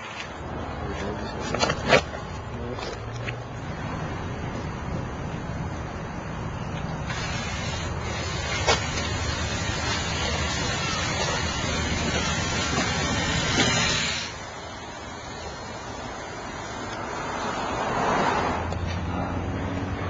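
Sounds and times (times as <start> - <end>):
jet engine roaring: 7.1 - 18.0.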